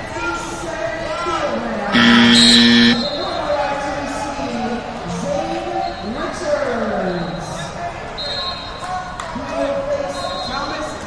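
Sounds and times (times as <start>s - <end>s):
short high tones: 2.0s - 3.2s.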